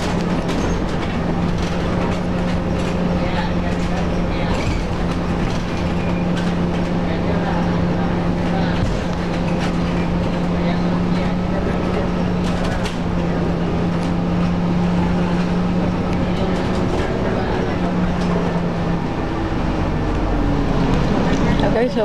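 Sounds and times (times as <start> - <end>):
clicks and rattles in cabin: 0.0 - 18.8
bus engine humming: 0.0 - 22.0.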